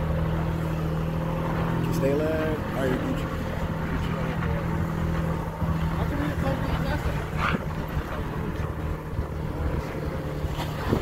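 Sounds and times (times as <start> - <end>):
wind noise: 6.7 - 11.0.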